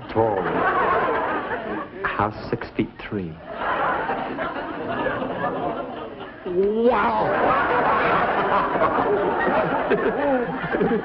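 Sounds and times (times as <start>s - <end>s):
studio audience laughing: 0.0s - 2.5s, 3.4s - 11.0s.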